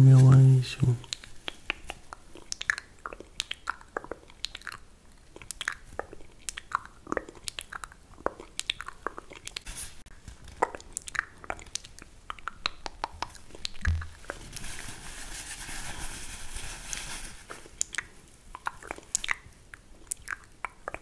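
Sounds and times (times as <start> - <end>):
tissue paper crinkling: 9.7 - 10.6, 14.0 - 17.8.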